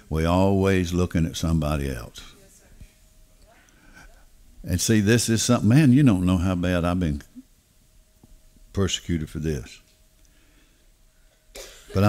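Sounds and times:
man talking: 0:00.0 - 0:02.4, 0:04.6 - 0:07.4, 0:08.7 - 0:09.9.

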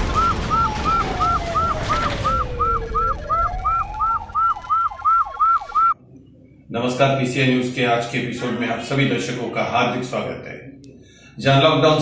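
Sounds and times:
siren chirps: 0:00.0 - 0:06.6
low rumble: 0:00.0 - 0:08.9.

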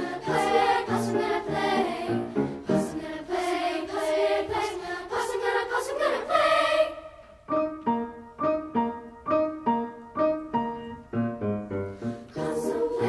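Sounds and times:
piano chords: 0:00.0 - 0:04.6, 0:05.2 - 0:13.0
children's choir singing: 0:00.0 - 0:07.6, 0:12.3 - 0:13.0
piano bass notes: 0:07.4 - 0:13.0.

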